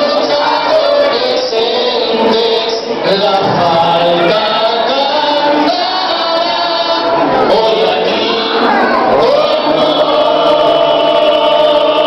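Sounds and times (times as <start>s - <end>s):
choir singing long notes: 0.0s - 12.0s.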